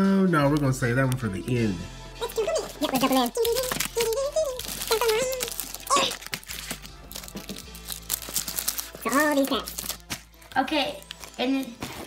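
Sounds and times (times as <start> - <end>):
foil packs crinkling: 2.8 - 12.0.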